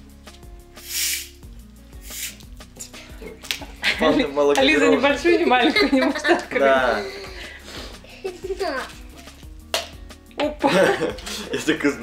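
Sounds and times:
quiet background music: 0:00.0 - 0:12.0
gas hissing from soda bottle: 0:00.7 - 0:02.9.

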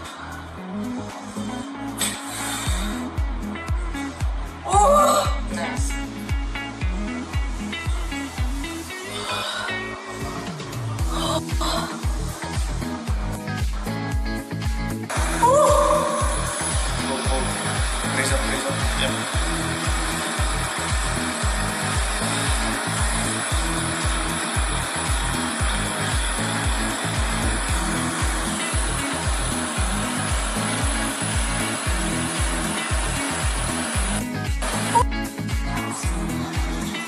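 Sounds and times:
background music with beat: 0:00.0 - 0:37.0
vibration plate buzzing: 0:15.1 - 0:35.2.

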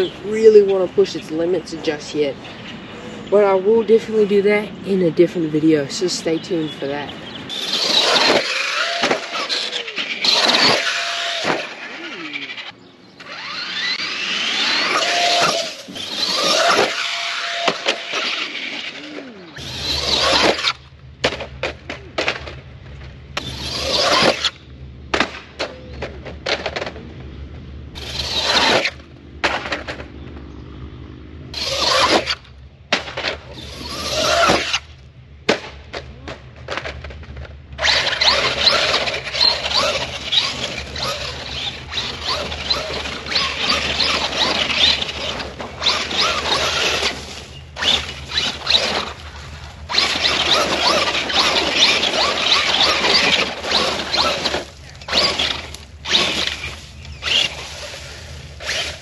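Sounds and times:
tyres on pavement: 0:00.0 - 0:59.0
electric motor whine: 0:07.5 - 0:20.9, 0:28.0 - 0:29.1, 0:31.5 - 0:32.5, 0:33.6 - 0:34.9, 0:37.8 - 0:59.0.

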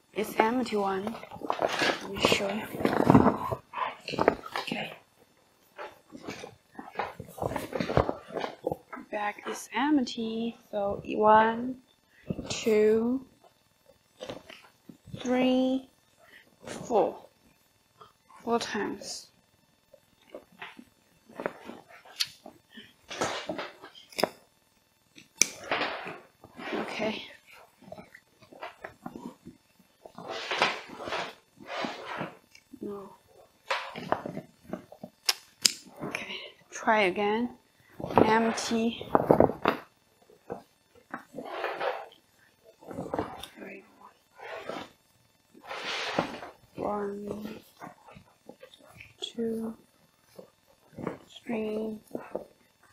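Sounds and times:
stiff fabric rustling and crinkling: 0:00.3 - 0:05.0, 0:05.6 - 0:09.6, 0:25.6 - 0:32.5, 0:38.0 - 0:52.7.

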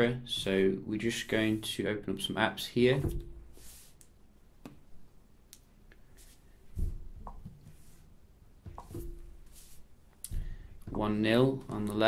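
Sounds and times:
dull thump: 0:02.9 - 0:03.6, 0:06.7 - 0:07.6, 0:10.3 - 0:11.4.

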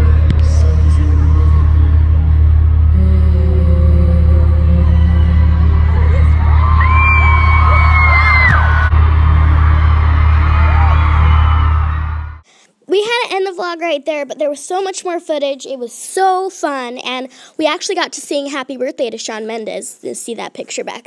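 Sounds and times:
loud amplified music with bass: 0:00.0 - 0:12.4.

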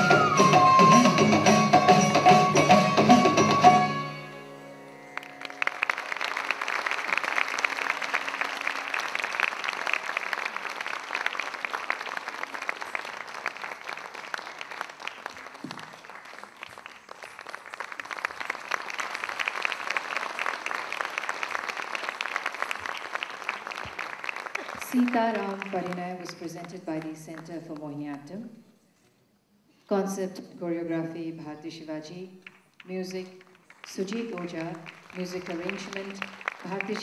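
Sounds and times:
music: 0:00.0 - 0:06.7
audience applauding: 0:05.1 - 0:27.5, 0:32.4 - 0:37.0.

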